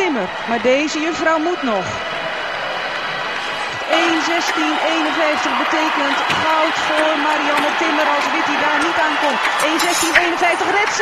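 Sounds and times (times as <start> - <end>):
crowd applauding: 0.0 - 11.0.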